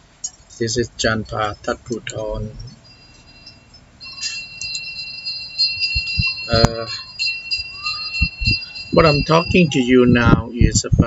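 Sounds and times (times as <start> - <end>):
metal chimes ringing: 0.0 - 10.8.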